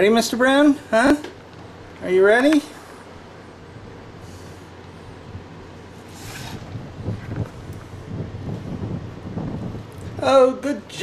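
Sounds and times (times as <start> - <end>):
low room hum: 0.0 - 11.0
sliding glass door scraping: 6.0 - 7.7.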